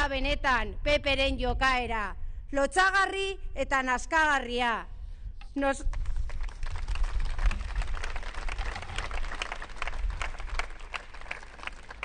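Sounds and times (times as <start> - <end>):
audience applauding: 6.3 - 12.0.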